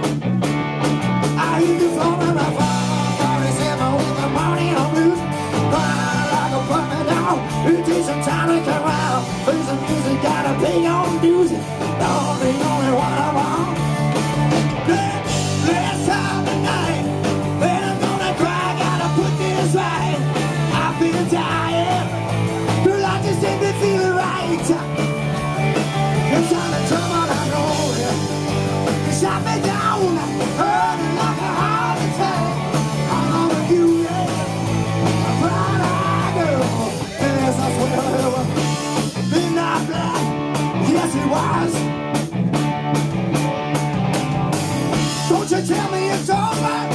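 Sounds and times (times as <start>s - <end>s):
bass notes: 0.0s - 46.9s
drums and cymbals: 0.0s - 46.9s
electric guitars: 0.0s - 46.9s
live rock band playing: 0.0s - 46.9s
person singing: 1.4s - 13.8s, 14.8s - 25.1s, 26.1s - 28.4s, 29.0s - 41.9s, 45.1s - 46.9s.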